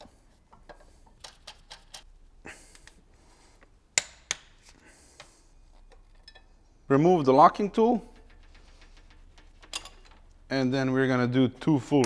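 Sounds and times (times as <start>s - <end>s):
metal tools clinking on engine parts: 8.2s - 10.2s.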